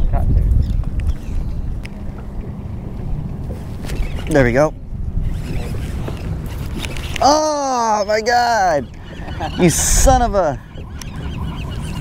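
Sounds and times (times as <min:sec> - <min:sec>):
water and wind rumble: 0:00.0 - 0:12.0.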